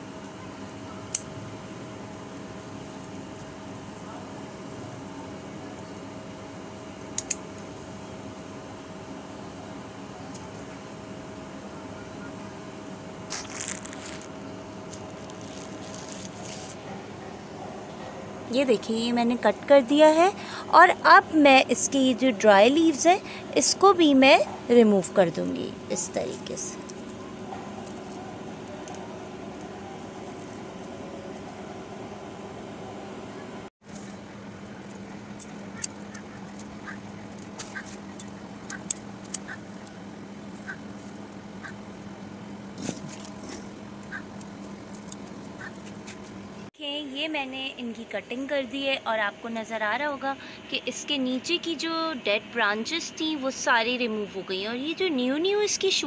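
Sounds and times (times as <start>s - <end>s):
steady background hum: 0.0s - 56.0s
dry plant stems crackling: 6.7s - 8.2s, 13.2s - 16.9s, 25.2s - 31.6s, 33.8s - 42.1s, 42.8s - 46.2s
crunching snips: 7.1s - 7.5s, 13.3s - 17.0s, 26.0s - 31.5s, 33.9s - 42.0s, 42.8s - 46.4s.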